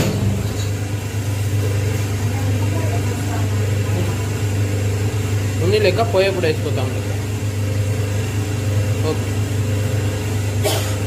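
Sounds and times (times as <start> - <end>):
machine motor hum: 0.0 - 11.0.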